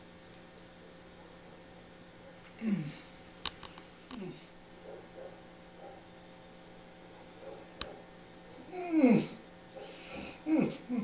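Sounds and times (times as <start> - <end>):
man moaning in pain: 2.6 - 3.0, 8.7 - 9.4.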